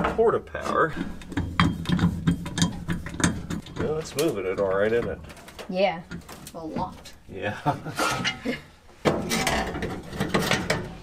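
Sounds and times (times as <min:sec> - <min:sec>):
steel clicking and creaking under load: 0:00.0 - 0:07.2.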